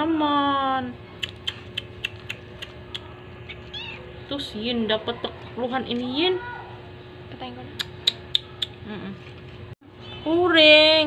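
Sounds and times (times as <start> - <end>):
kitten mewing: 1.2 - 4.1.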